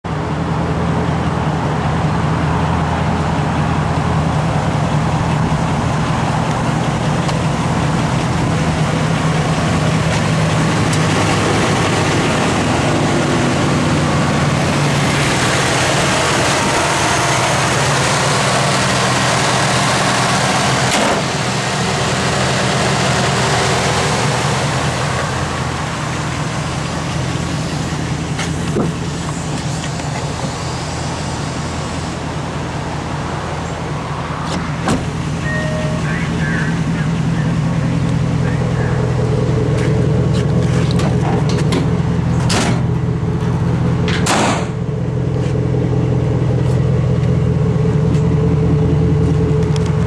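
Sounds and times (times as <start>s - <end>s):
truck engine idling: 0.0s - 50.0s.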